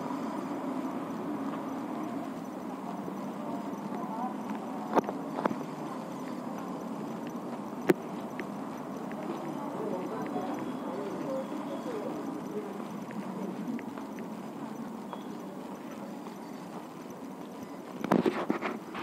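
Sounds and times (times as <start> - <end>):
background voices murmuring: 0.0 - 19.0.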